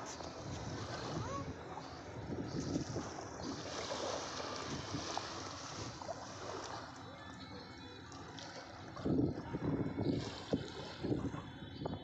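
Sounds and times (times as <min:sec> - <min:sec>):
wind buffeting microphone: 0:00.0 - 0:06.5, 0:08.8 - 0:12.0
small waves washing onto beach: 0:00.0 - 0:07.2, 0:08.1 - 0:11.4.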